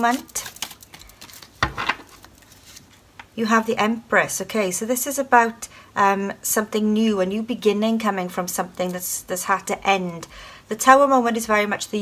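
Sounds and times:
cards being handled: 0.0s - 3.3s.

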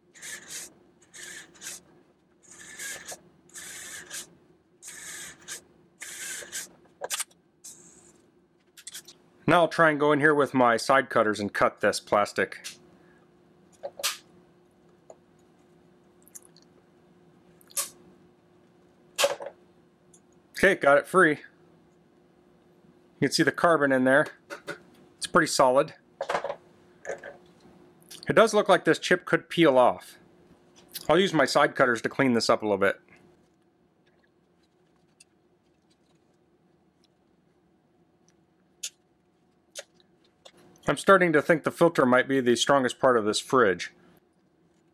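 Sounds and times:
faint steady hum: 0.0s - 44.9s.

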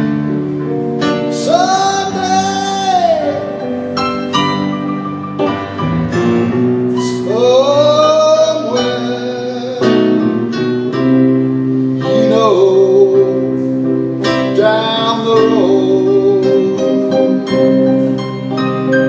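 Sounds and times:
blues electric guitar: 0.0s - 19.0s
keyboard accompaniment: 0.0s - 19.0s.

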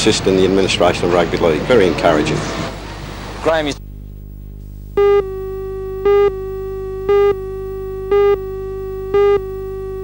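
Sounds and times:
steady electronic tone: 1.7s - 10.0s
short beeps: 5.0s - 10.0s.

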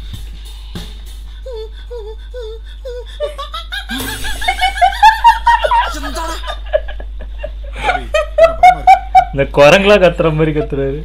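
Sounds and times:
woman and man laughing: 2.9s - 9.4s.

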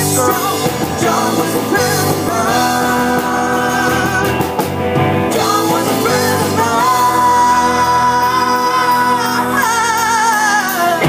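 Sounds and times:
live rock band playing: 0.0s - 11.0s
person singing: 0.0s - 11.0s.

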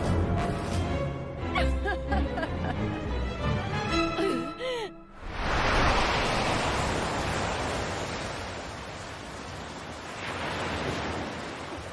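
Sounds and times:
ocean waves crashing: 5.1s - 11.9s.

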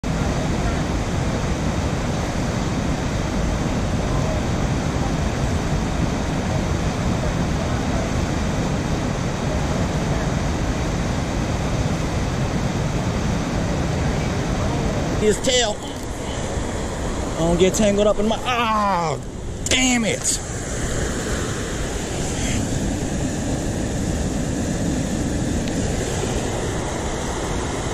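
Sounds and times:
fast river current rushing: 0.0s - 27.9s
wind buffeting microphone: 0.0s - 27.9s.

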